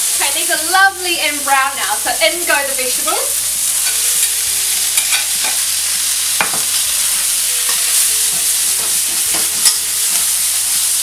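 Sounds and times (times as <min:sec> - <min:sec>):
food sizzling in a wok: 0:00.0 - 0:11.0
spatula scraping and clacking wok: 0:03.7 - 0:05.8, 0:06.4 - 0:11.0.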